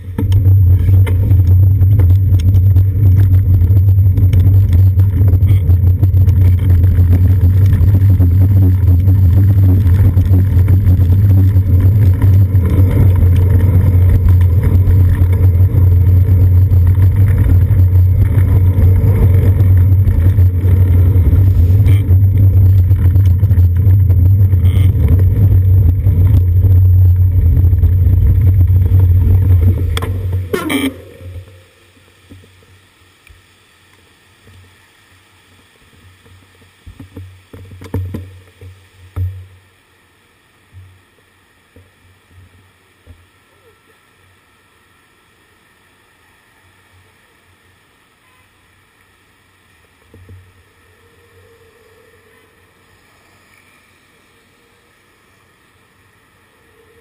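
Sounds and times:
bicycle riding vibration: 0:00.0 - 0:57.0
wind buffeting rumble: 0:00.2 - 0:30.6.

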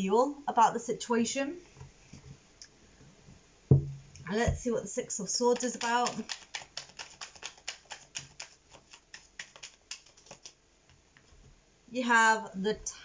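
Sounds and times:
cards being thumbed through: 0:05.6 - 0:10.6.

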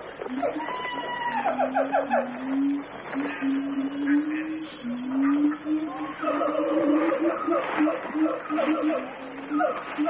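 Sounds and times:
gibbons calling in chorus: 0:00.2 - 0:10.0.

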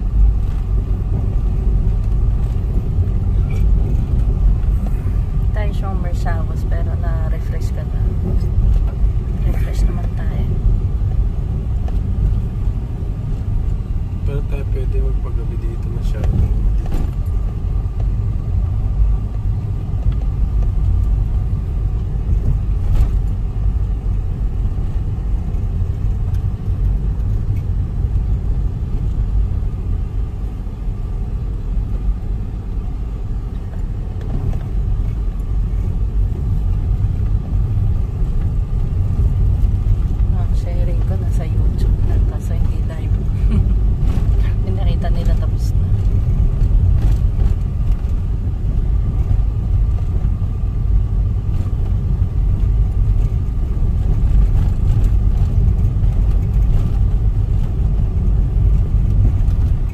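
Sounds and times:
car cabin engine and road rumble: 0:00.0 - 0:59.9.

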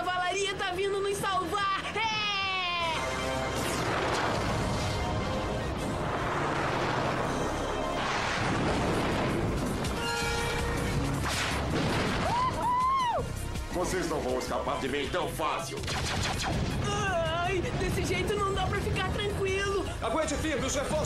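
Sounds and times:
dramatic music: 0:00.0 - 0:21.0
explosions and crashes: 0:03.6 - 0:12.7, 0:15.8 - 0:19.2.

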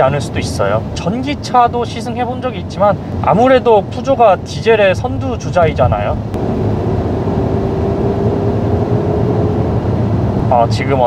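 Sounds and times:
car engine humming: 0:06.1 - 0:11.0
tyre and road noise: 0:06.2 - 0:11.0.

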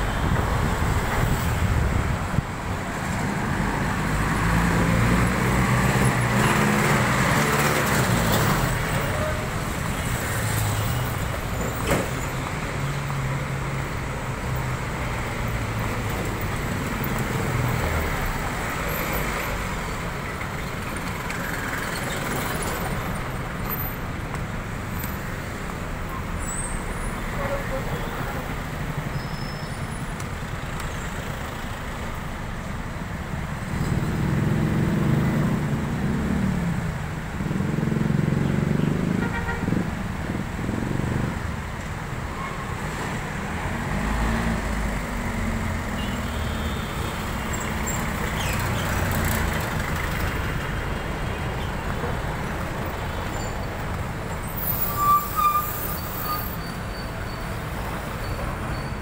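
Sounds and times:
car engines passing: 0:00.0 - 0:54.9
road noise: 0:00.0 - 0:59.0.

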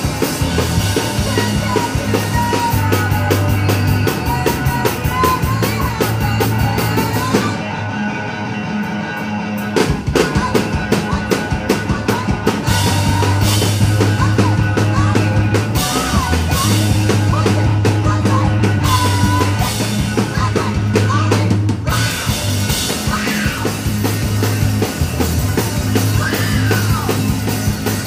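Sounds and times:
rock band playing live: 0:00.0 - 0:28.0.

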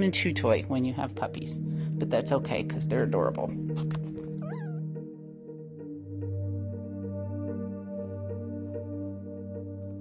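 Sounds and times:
soft background music: 0:00.0 - 0:10.0
puppy whining: 0:04.3 - 0:05.0.

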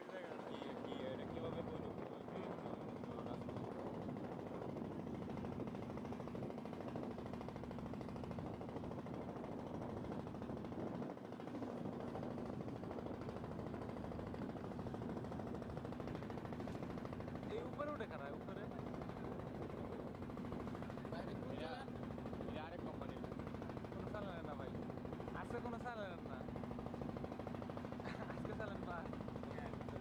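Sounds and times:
boat engine chugging: 0:00.0 - 0:30.0.

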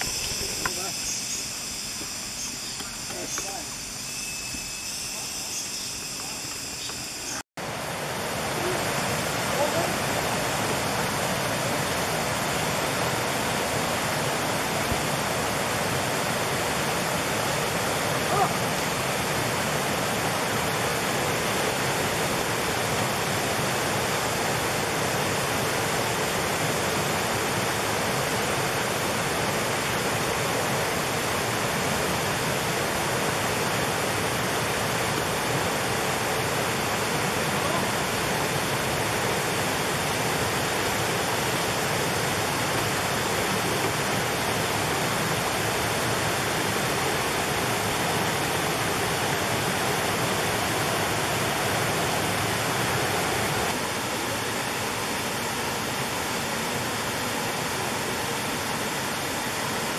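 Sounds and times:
waterfall rushing over rocks: 0:07.6 - 0:59.9.

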